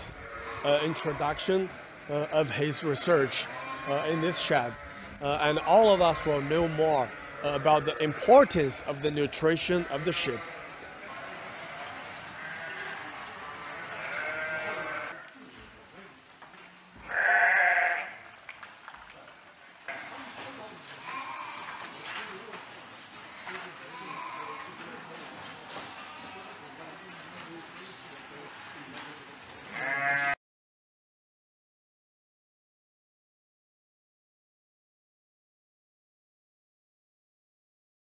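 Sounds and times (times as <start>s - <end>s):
sheep bleating: 0.0s - 15.3s, 17.0s - 18.2s, 21.0s - 21.9s, 23.8s - 24.8s, 29.6s - 30.4s.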